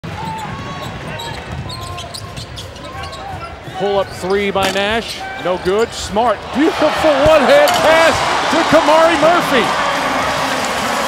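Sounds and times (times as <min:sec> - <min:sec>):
arena noise: 0:00.0 - 0:11.0
sneakers squeaking on floor: 0:00.1 - 0:05.5.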